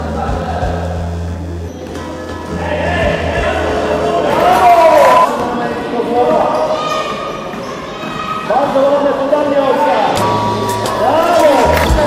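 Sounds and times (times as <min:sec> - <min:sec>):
people shouting in echoing hall: 0:02.5 - 0:12.0.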